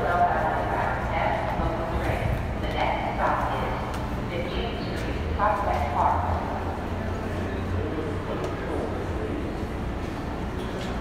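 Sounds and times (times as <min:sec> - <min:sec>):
rumble of train wheels on track: 0:00.0 - 0:11.0.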